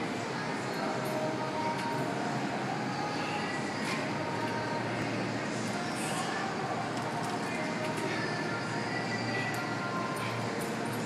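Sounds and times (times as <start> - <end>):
continuous hiss: 0.0 - 11.0.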